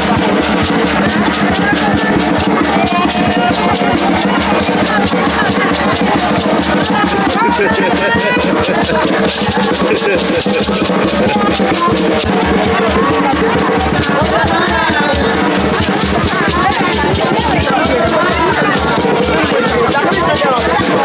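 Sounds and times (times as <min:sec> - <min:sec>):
crowd voices calling: 0:00.0 - 0:21.0
rapid drumming: 0:00.0 - 0:21.0
rattling shakers: 0:00.0 - 0:21.0.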